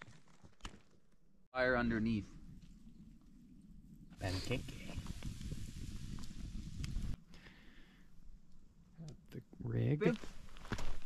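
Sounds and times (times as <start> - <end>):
campfire crackling: 0.0 - 11.0
wind rumble on microphone: 2.2 - 7.2.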